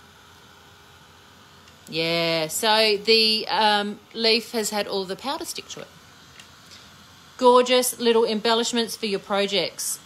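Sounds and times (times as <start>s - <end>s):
heat tool fan hissing: 0.0s - 10.0s.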